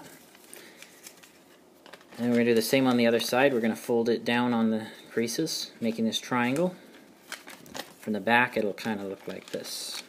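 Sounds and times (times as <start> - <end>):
paper rustling and crinkling: 0.0 - 3.5, 5.9 - 10.0.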